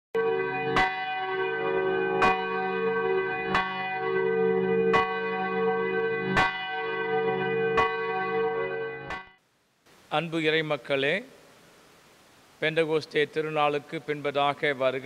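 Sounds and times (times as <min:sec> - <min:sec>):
church bell tolling: 0:00.2 - 0:09.4.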